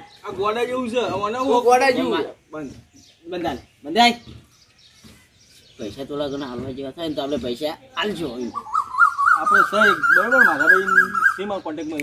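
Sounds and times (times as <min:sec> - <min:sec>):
man talking quickly: 0:09.3 - 0:12.0.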